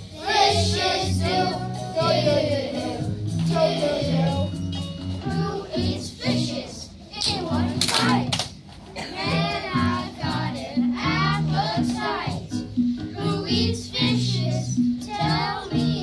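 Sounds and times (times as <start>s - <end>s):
young children singing: 0.0s - 4.5s, 5.2s - 16.0s
backing music: 0.0s - 16.0s.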